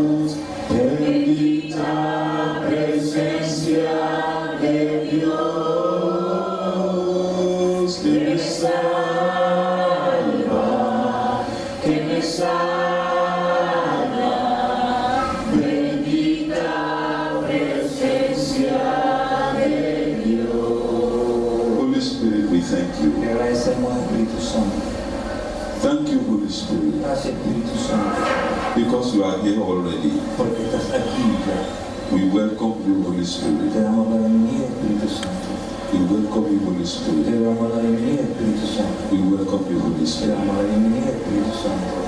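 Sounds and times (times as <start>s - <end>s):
voices singing a worship song: 0.0s - 42.0s.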